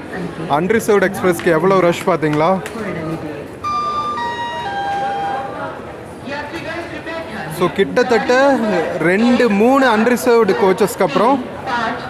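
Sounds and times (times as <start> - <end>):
public-address chime descending: 3.6 - 5.8.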